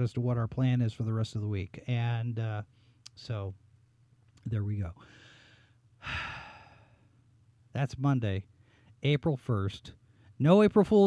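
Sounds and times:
man breathing into microphone: 5.0s - 7.1s.

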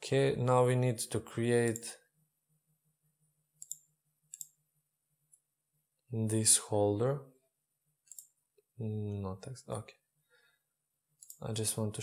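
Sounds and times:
computer mouse clicks: 3.6s - 4.6s, 8.0s - 8.4s, 11.2s - 11.4s.

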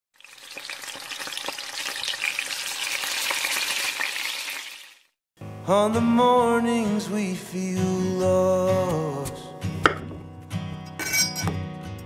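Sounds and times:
food sizzling in a pan: 0.2s - 5.2s.

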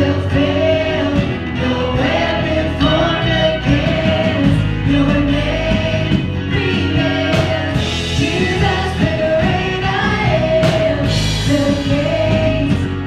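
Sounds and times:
male and female voices singing: 0.0s - 13.0s
worship band playing: 0.0s - 13.0s.

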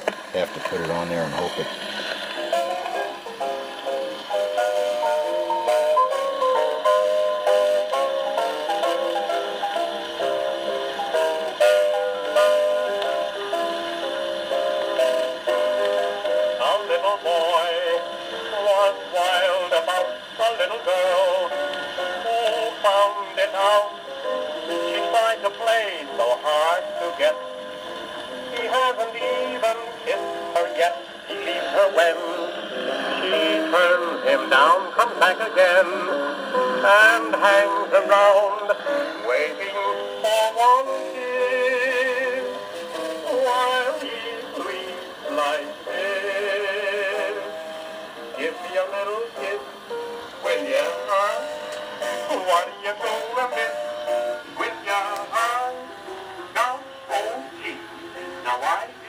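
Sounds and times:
band on old record: 0.0s - 59.0s
record surface hiss: 0.0s - 59.0s
person singing with vibrato: 28.4s - 59.0s.

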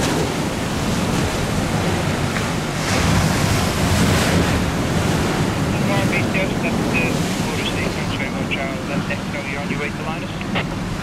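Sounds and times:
wind buffeting microphone: 0.0s - 11.0s
people talking: 5.7s - 10.6s.

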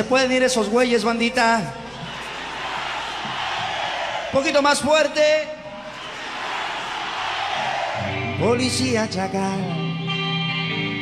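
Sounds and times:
crowd cheering and shouting: 1.8s - 8.8s.

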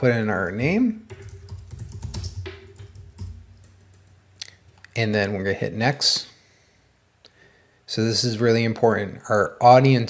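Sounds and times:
low steady hum: 0.4s - 7.9s
computer keyboard typing: 1.1s - 4.9s.

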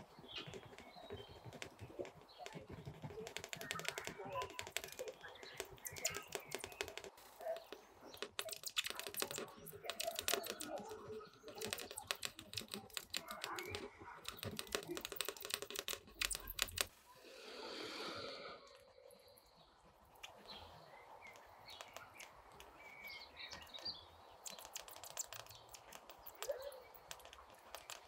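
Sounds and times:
pencil scratching and tapping on paper: 0.0s - 16.9s, 21.3s - 28.0s.

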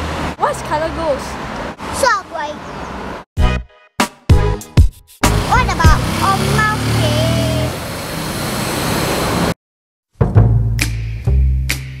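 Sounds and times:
road traffic passing: 0.0s - 3.3s, 5.2s - 9.6s
child's voice: 1.9s - 2.7s, 5.4s - 7.7s.

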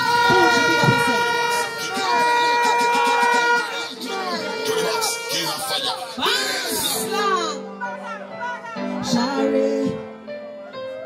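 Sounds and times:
horn-like tone over sound system: 0.0s - 7.8s
person shouting: 0.0s - 9.0s.

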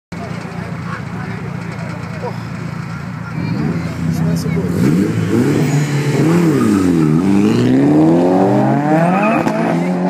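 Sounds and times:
crowd chatter: 0.1s - 8.4s
car engines running: 0.1s - 10.0s
car engine revving: 0.8s - 10.0s.

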